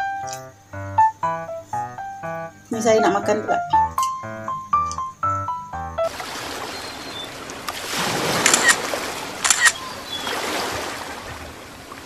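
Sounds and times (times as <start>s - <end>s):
keyboard music: 0.0s - 6.1s
sharp clicks: 0.2s - 0.5s, 4.8s - 5.1s, 8.4s - 8.8s, 9.4s - 9.8s
ocean surf rushing: 6.1s - 12.0s.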